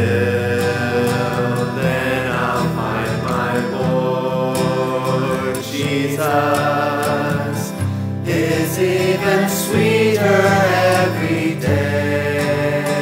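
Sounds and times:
person singing a carol: 0.0 - 13.0.

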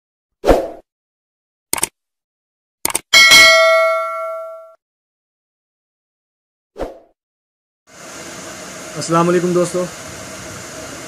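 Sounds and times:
bell ding: 3.2 - 4.8.

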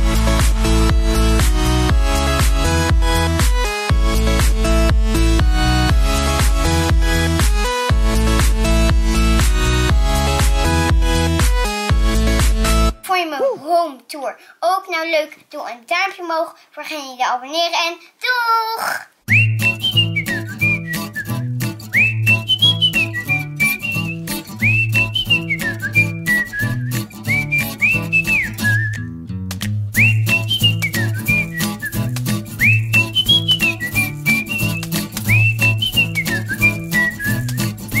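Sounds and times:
bouncy bass line: 0.0 - 13.0, 19.3 - 38.0
whistled melody: 19.3 - 29.2, 29.9 - 38.0
clicking beat: 27.5 - 38.0.

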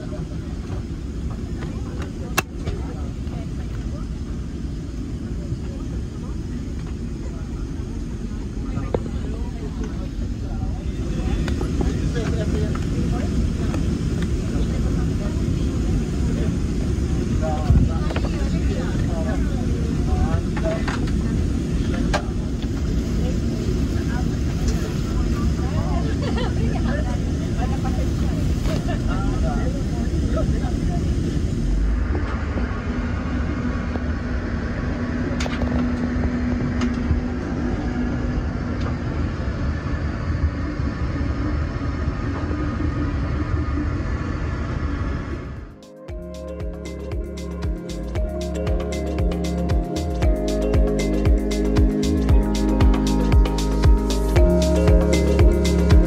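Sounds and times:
passengers murmuring: 0.0 - 44.8
airplane cabin rumble: 0.0 - 56.0.

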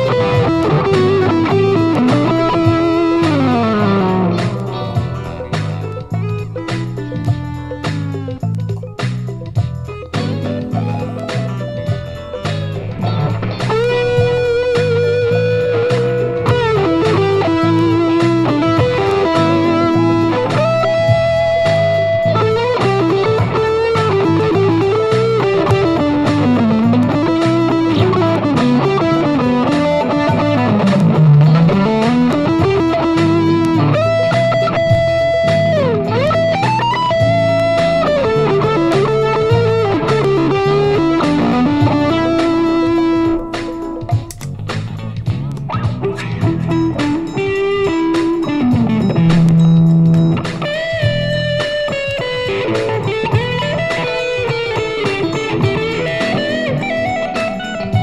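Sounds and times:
electric guitar funk lead: 0.0 - 58.0
repeating backing music: 0.0 - 58.0.

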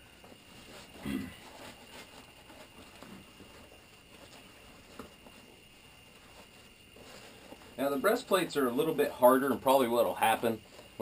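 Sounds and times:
fabric rustling: 0.0 - 11.0
low grunt: 1.0 - 1.4.

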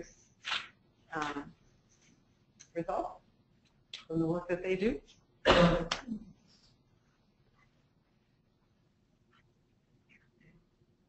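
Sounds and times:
person coughing: 5.5 - 6.2.

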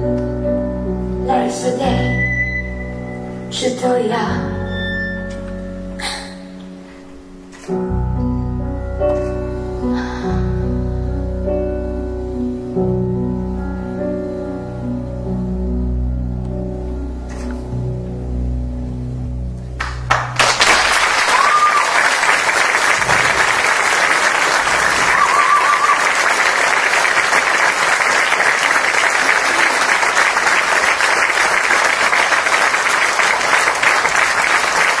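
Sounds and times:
audience applause: 19.8 - 35.0
whistle-like tones from crowd: 24.9 - 26.3.

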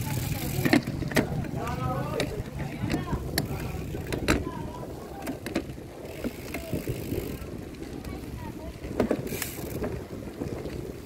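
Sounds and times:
bicycle knocking over bumps: 0.0 - 11.0
bicycle tyres and wind rushing: 0.0 - 11.0.

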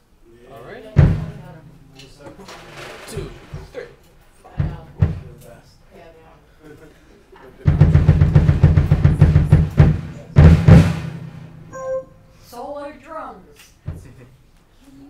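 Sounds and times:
drum roll: 1.0 - 1.8, 7.6 - 11.7
drum strikes: 1.0 - 1.9, 4.5 - 5.4, 7.6 - 12.2.

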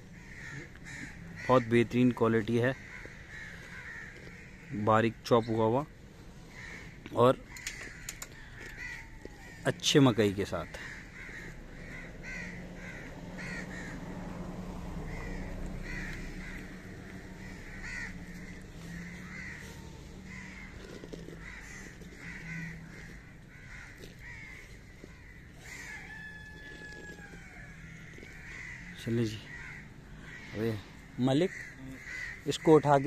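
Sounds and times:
crows cawing: 0.0 - 33.0
low hum: 5.8 - 28.9.

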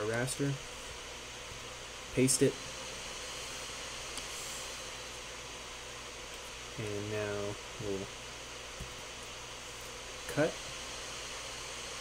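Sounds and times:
microphone and room hiss: 0.0 - 12.0.

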